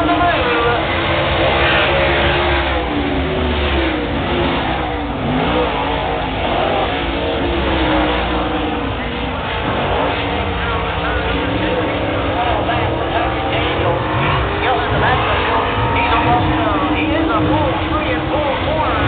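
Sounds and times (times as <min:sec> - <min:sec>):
race car engines passing: 0:00.0 - 0:19.0.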